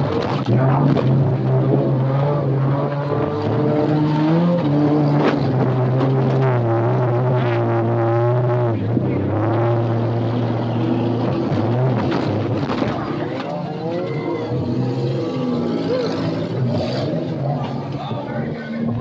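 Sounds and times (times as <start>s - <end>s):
car engine running hard: 0.0s - 19.0s.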